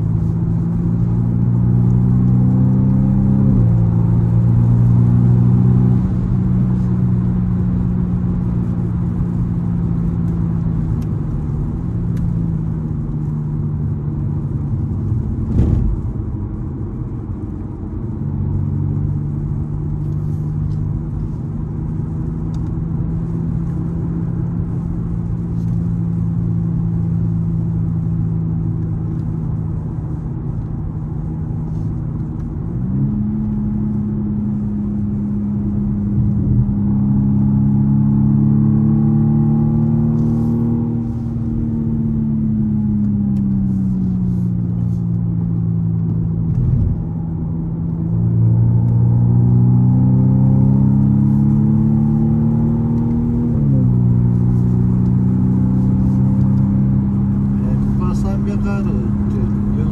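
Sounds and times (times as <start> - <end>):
car engine from inside cabin: 0.0 - 59.9.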